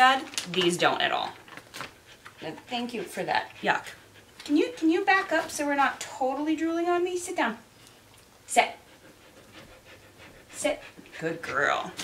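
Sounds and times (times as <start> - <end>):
dog panting faintly: 1.8 - 7.7, 8.4 - 12.0.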